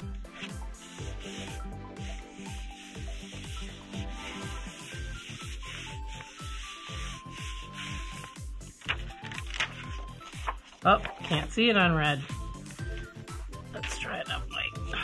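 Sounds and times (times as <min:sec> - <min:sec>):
hands rubbing paper: 0:00.0 - 0:13.4
background music with low beat: 0:00.0 - 0:15.0
paper peeled off block: 0:03.3 - 0:11.4.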